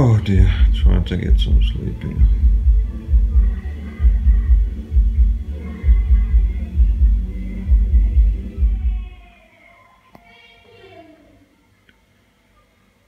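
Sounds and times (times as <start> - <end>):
heavy bass beat: 0.0 - 9.2
faint singing: 0.0 - 13.0.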